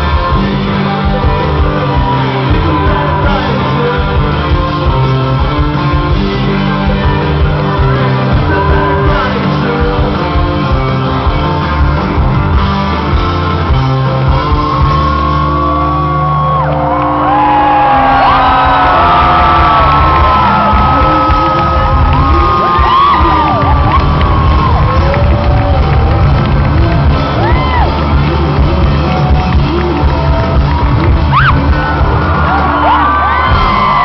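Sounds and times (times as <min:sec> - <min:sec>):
crowd cheering: 0:00.0 - 0:05.2, 0:10.7 - 0:34.0
live rock band playing: 0:00.0 - 0:34.0
crowd whooping and shouting: 0:01.0 - 0:04.0, 0:13.9 - 0:34.0.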